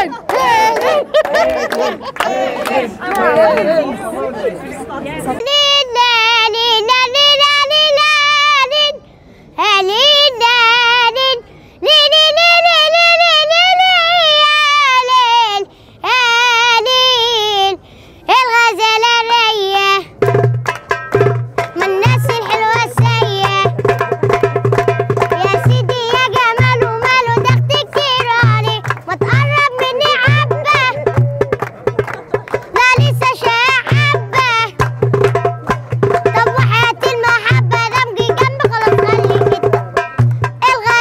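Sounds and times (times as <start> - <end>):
hand-beaten frame drum: 20.2 - 41.0.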